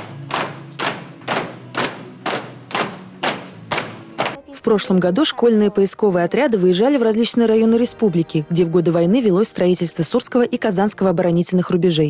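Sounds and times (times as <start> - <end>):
marching footsteps on stone floor: 0.0 - 4.6.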